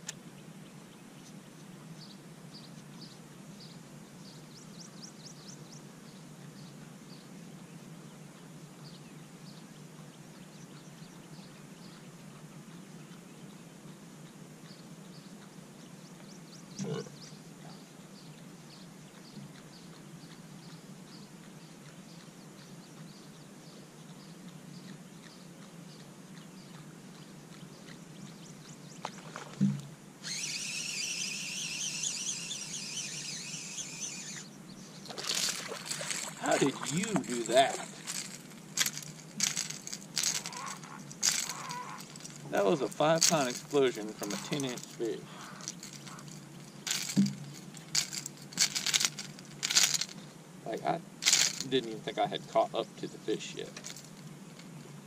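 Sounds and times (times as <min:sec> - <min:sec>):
low steady hum: 0:00.0 - 0:55.0
high-pitched buzzing: 0:29.6 - 0:34.5, 0:35.2 - 0:50.2
fish splash: 0:35.1 - 0:38.2.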